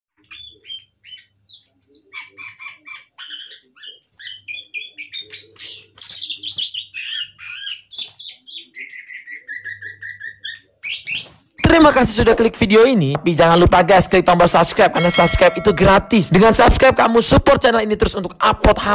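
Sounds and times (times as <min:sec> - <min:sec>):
songbird singing: 0:00.2 - 0:11.7
person speaking: 0:11.6 - 0:18.9.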